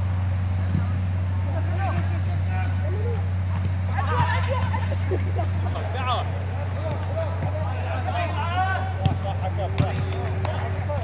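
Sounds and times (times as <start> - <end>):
steady low hum: 0.0 - 11.0
football players shouting: 1.5 - 11.0.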